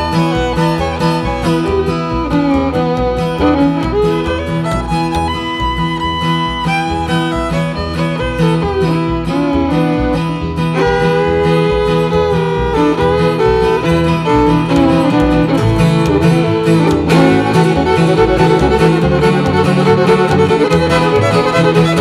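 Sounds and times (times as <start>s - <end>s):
bowed fiddle melody: 0.0s - 22.0s
plucked upright bass: 0.0s - 22.0s
strummed acoustic guitar: 0.0s - 22.0s.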